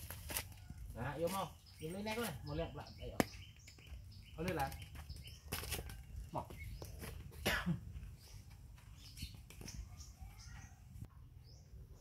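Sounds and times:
short cough-like vocal sounds: 7.4s - 7.9s.

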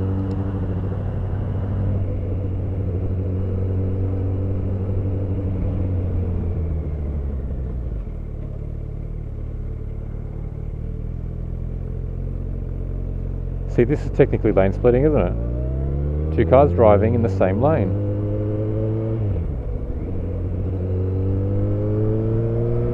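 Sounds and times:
motorcycle engine running: 0.0s - 22.9s.

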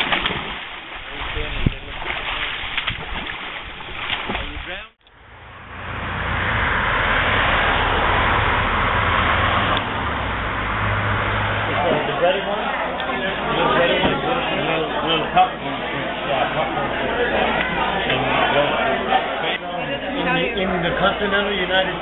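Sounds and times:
water splashing in pool: 0.0s - 5.0s
low hum: 5.0s - 12.0s
people's voices: 11.5s - 22.0s.

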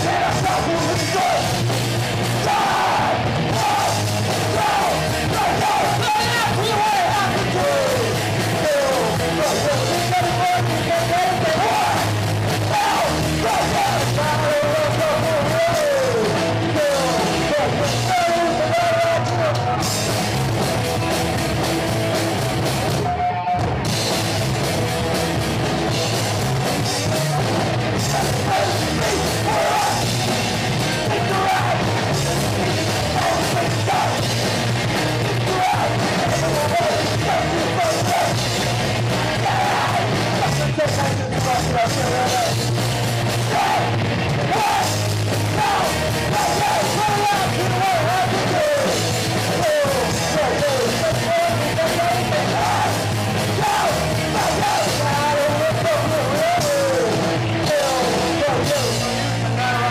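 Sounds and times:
lead vocal singing: 0.0s - 20.1s, 26.8s - 59.9s
distorted electric guitars: 0.0s - 59.9s
drum kit: 0.0s - 59.9s
person singing: 30.9s - 34.4s, 43.5s - 59.9s.

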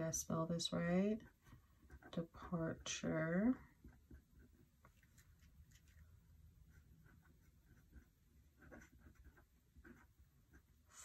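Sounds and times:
pen scratching on paper: 0.7s - 5.9s, 6.6s - 11.0s.

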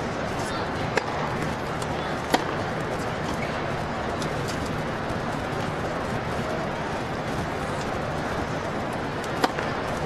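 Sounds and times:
crowd noise from stands: 0.0s - 10.0s
tennis racket hitting ball: 0.9s - 3.4s, 9.2s - 10.0s.

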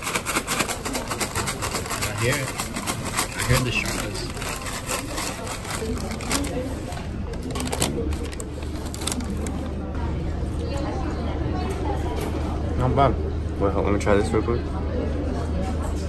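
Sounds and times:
fries rattling in bag: 0.0s - 9.8s
paper bag crinkling: 0.0s - 9.8s.

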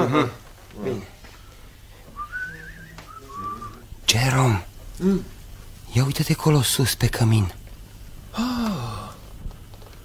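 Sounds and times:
man sighing in amazement: 8.3s - 9.2s.

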